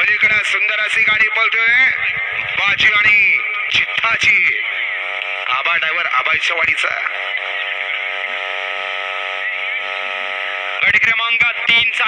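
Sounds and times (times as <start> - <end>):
steady buzzing tone: 0.0 - 12.0.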